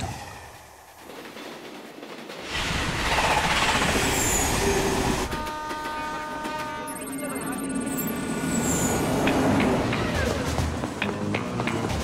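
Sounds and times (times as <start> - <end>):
electric train rushing past: 0.0 - 12.0
multi-tone train horn: 5.2 - 7.8.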